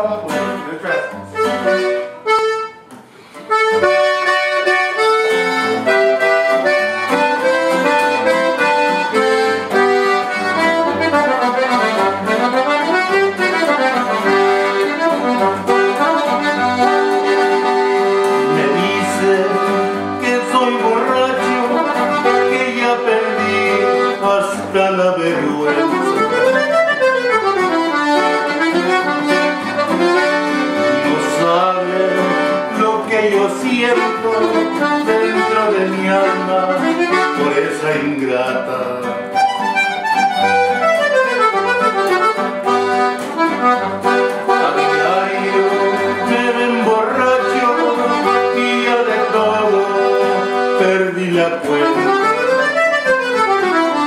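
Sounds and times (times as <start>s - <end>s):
bajo sexto strumming chords: 0.0s - 54.0s
button accordion melody: 0.0s - 54.0s.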